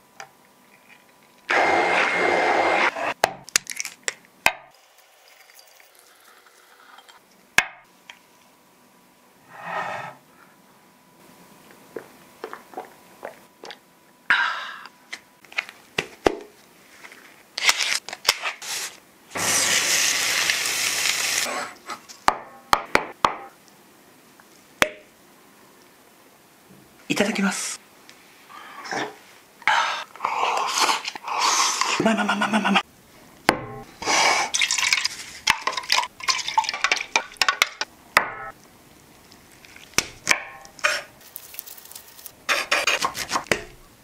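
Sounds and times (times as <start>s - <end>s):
blender motor running: 1.5s - 2.9s
meat sizzling in a frying pan: 19.4s - 21.5s.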